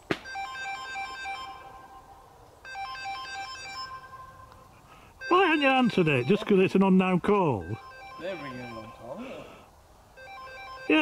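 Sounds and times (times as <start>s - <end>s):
smartphone melodic ringtone: 0.3s - 4.6s, 5.2s - 6.8s, 7.4s - 11.0s.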